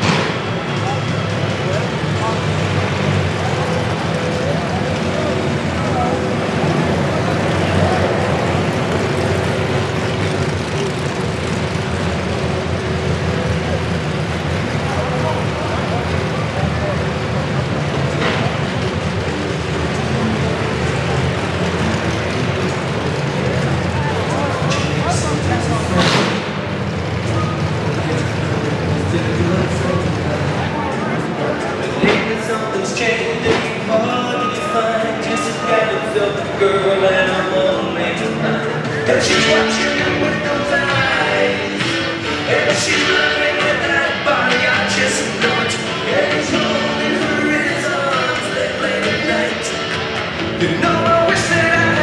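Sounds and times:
car engines rumbling: 0:00.0 - 0:52.0
people's voices: 0:00.0 - 0:52.0.

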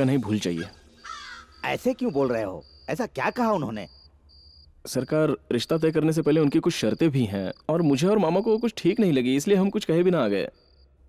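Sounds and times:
high-pitched chirp pulses: 0:00.0 - 0:10.9.

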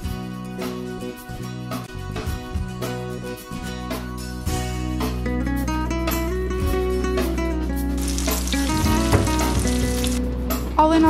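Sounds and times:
background music: 0:00.0 - 0:11.0
clams sizzling in hot oil: 0:08.0 - 0:10.2.

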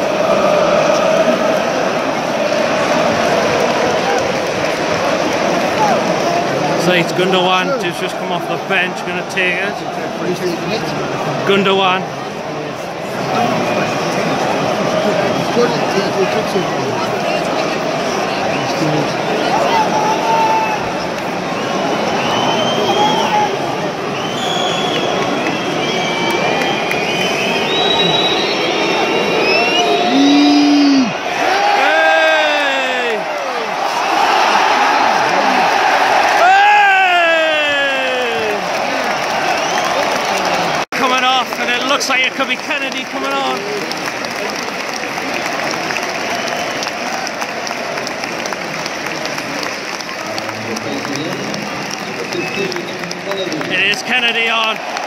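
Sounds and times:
crowd shouts: 0:00.0 - 0:44.5, 0:51.0 - 0:55.0
long falling crowd calls: 0:00.0 - 0:55.0
stadium crowd din: 0:00.0 - 0:55.0.

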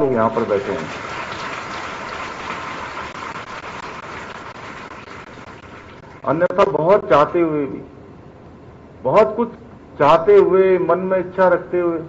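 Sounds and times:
audience applauding: 0:00.4 - 0:06.4.

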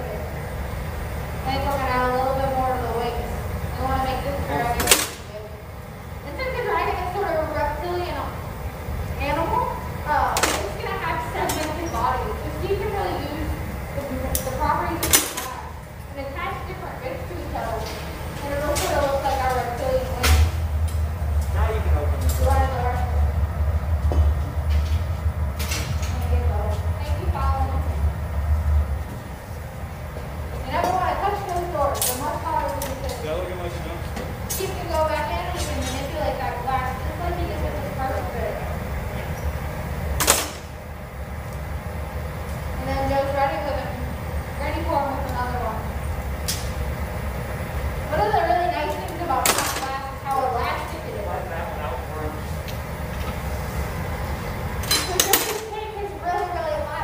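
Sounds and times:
furnace roaring: 0:00.0 - 0:57.0
low steady rumble: 0:00.0 - 0:57.0
metal tools clinking: 0:54.8 - 0:55.7.

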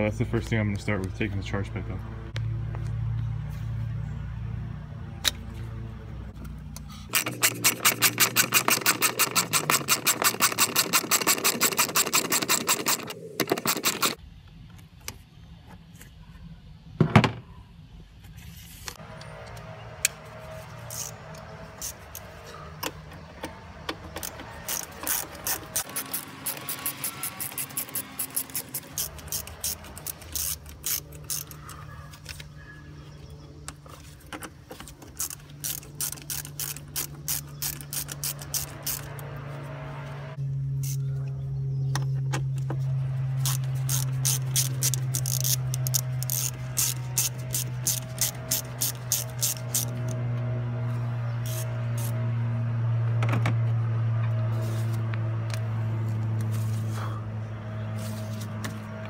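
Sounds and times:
ratchet wrench clicking: 0:07.1 - 0:14.2, 0:20.8 - 0:23.0, 0:23.9 - 0:31.8, 0:34.8 - 0:39.2, 0:43.4 - 0:50.2, 0:51.4 - 0:52.2.

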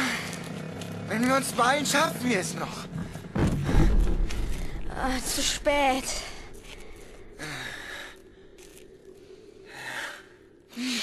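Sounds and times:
person breathing heavily: 0:06.0 - 0:11.0.

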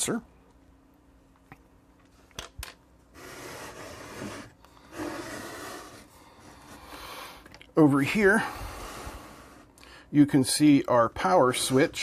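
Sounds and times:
rubbing and scraping: 0:03.1 - 0:07.0.

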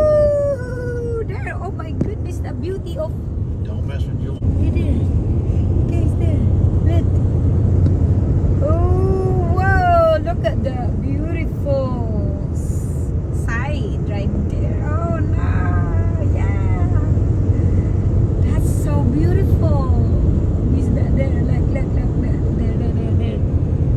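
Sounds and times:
car road and engine rumble: 0:00.0 - 0:23.9.

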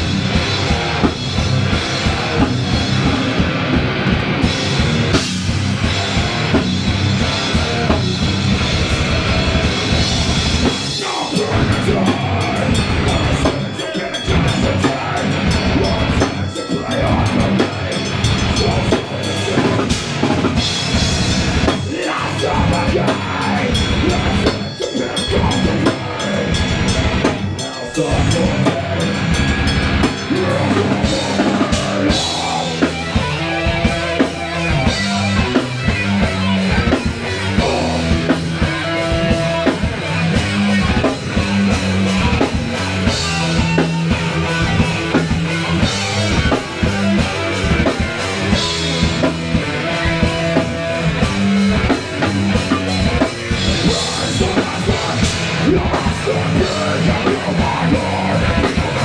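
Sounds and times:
distorted electric guitar: 0:00.0 - 0:59.0
drum kit: 0:00.0 - 0:59.0.

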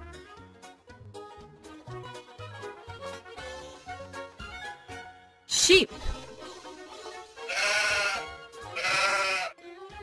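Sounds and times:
background music: 0:00.0 - 0:10.0
sheep bleating: 0:07.4 - 0:09.6.

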